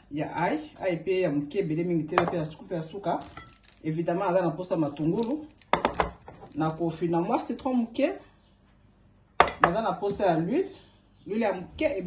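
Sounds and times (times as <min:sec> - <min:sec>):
person talking: 0:00.1 - 0:05.6, 0:06.5 - 0:08.2, 0:09.6 - 0:12.0.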